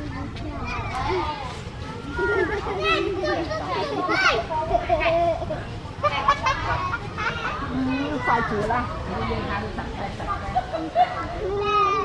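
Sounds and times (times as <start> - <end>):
children's voices: 0.0 - 12.0
people talking and calling out: 0.0 - 12.0.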